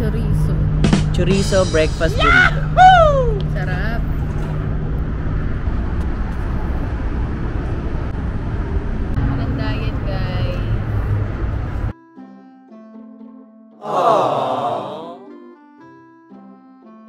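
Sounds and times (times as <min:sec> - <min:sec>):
low engine-like hum: 0:00.0 - 0:11.9
road traffic rumble: 0:00.0 - 0:11.9.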